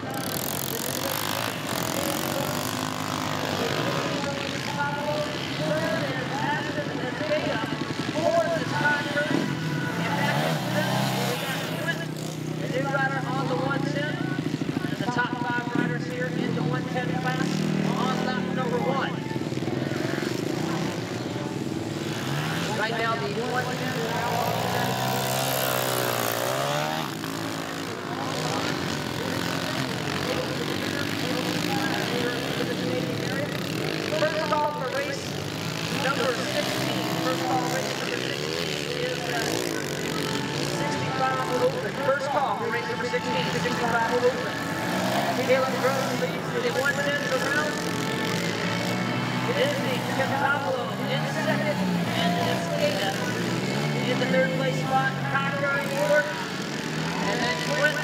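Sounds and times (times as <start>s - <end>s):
dirt bike engines revving: 0.0s - 58.0s.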